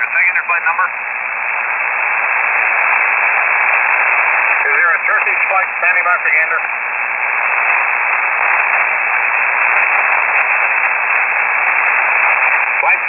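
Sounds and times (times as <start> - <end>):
radio static hiss: 0.0 - 13.0.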